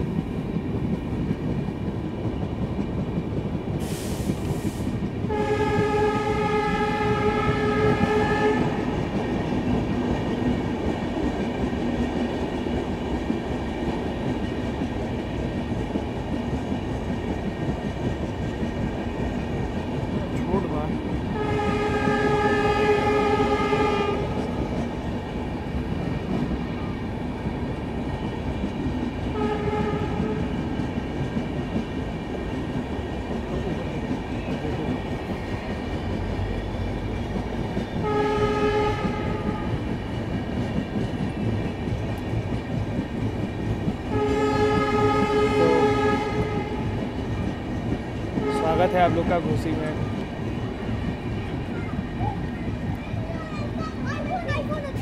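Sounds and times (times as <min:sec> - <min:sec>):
train running rumble and clatter: 0:00.0 - 0:55.0
locomotive horn blasts: 0:05.3 - 0:08.8, 0:21.4 - 0:24.4, 0:29.4 - 0:30.5, 0:38.0 - 0:39.8, 0:44.1 - 0:46.9, 0:48.4 - 0:49.4.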